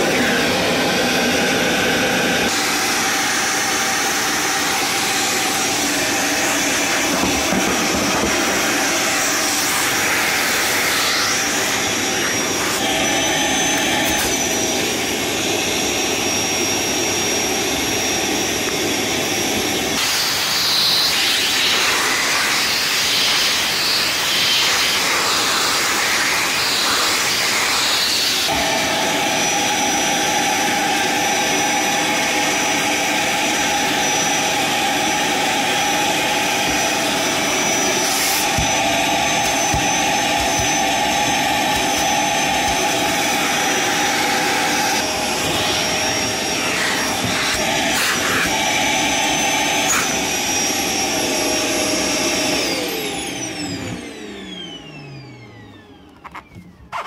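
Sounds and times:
vacuum cleaner running: 0:00.0 - 0:57.0
motor winding down whine: 0:52.6 - 0:57.0.

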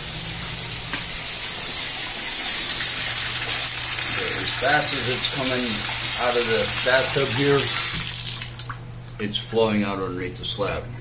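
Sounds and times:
tap water splashing into tub: 0:02.1 - 0:09.2.

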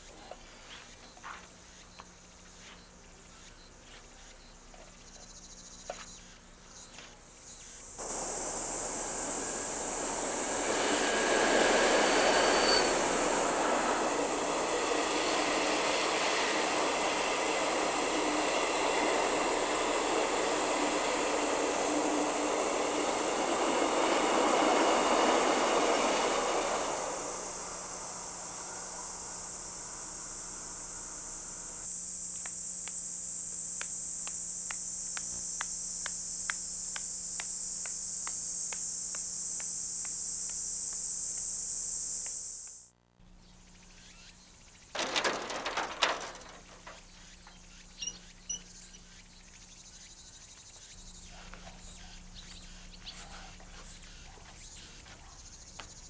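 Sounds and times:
high insect drone: 0:00.0 - 0:56.0
passenger train rumbling past: 0:08.0 - 0:31.9, 0:45.0 - 0:47.6.

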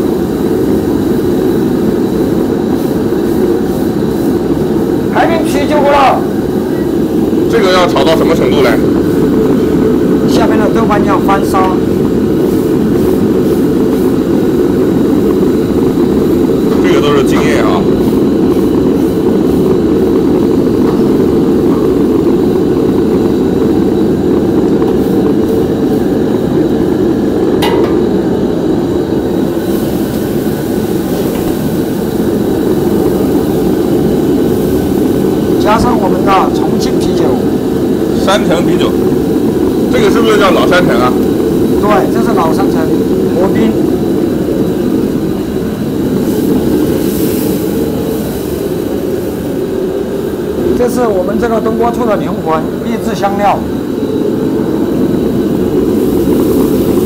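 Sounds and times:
gas burner roaring: 0:00.0 - 0:57.0
food frying in a wok: 0:11.0 - 0:36.2, 0:42.6 - 0:50.0.

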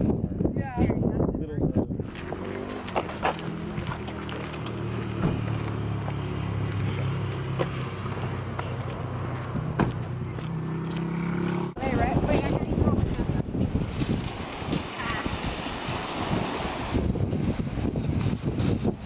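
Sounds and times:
vehicle engine humming: 0:02.0 - 0:19.0.

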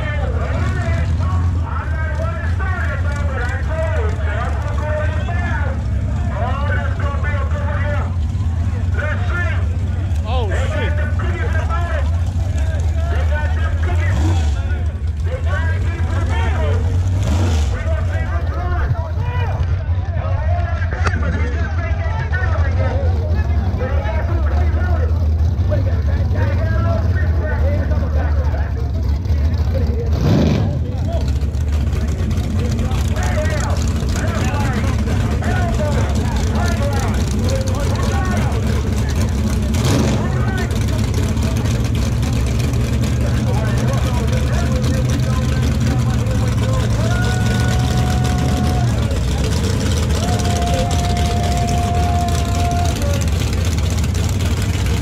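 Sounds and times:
engine sharp burst: 0:00.0 - 0:19.6, 0:23.4 - 0:55.0
car engine idling: 0:00.0 - 0:55.0
crowd chatter: 0:00.0 - 0:55.0.

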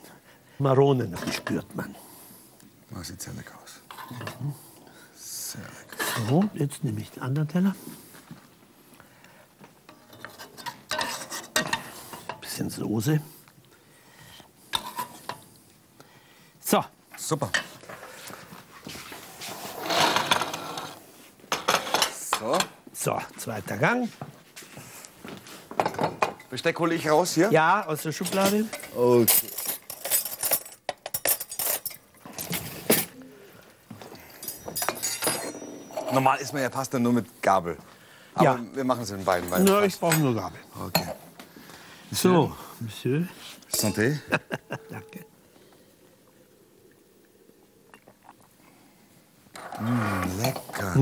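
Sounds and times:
metal spoon scraping in pot: 0:09.9 - 0:12.4
metal cutlery clinking: 0:09.9 - 0:12.5, 0:28.2 - 0:33.2, 0:34.2 - 0:36.3, 0:39.3 - 0:40.4, 0:43.7 - 0:44.2.

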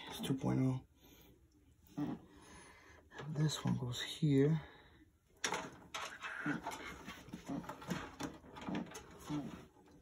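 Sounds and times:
cable rustling and clicking: 0:05.4 - 0:10.0.

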